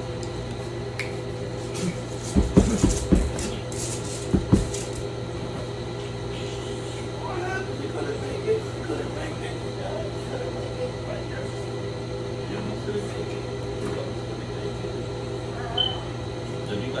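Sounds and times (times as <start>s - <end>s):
machine hum: 0.0s - 17.0s.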